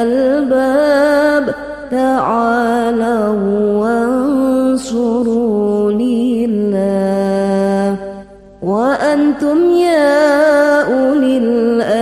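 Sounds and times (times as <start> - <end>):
person singing melismatic chant: 0.0 - 12.0.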